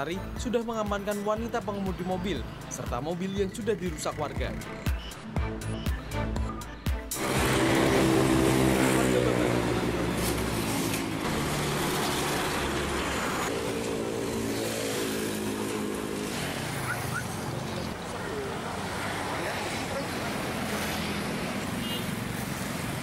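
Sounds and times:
heavy truck engine passing: 0:07.1 - 0:23.0.

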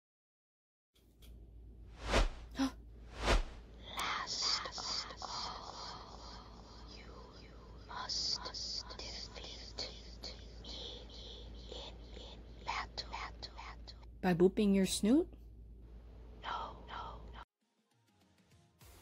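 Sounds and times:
person whispering in a hissing tone: 0:03.8 - 0:14.1, 0:16.4 - 0:17.4.

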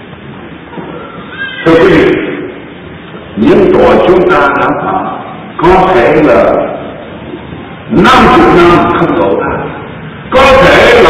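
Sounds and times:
low background noise: 0:00.0 - 0:11.0
man speaking: 0:01.6 - 0:02.5, 0:03.4 - 0:06.9, 0:07.9 - 0:11.0.

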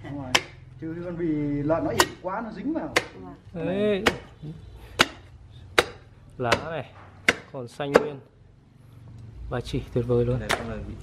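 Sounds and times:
cleaver chopping through bones: 0:00.2 - 0:00.7, 0:01.8 - 0:02.2, 0:02.9 - 0:03.3, 0:03.9 - 0:08.2, 0:10.4 - 0:10.8.

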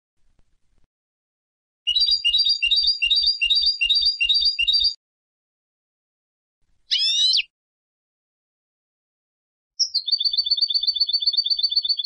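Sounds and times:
goldfinch singing: 0:01.9 - 0:05.0, 0:06.9 - 0:07.5.

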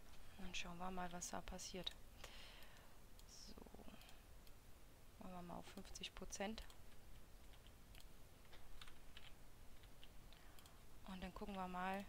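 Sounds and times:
computer mouse clicks: 0:06.6 - 0:10.8.

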